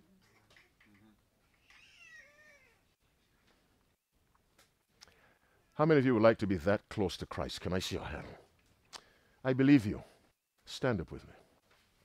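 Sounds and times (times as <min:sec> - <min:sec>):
high-pitched animal call: 0:01.6 - 0:02.8.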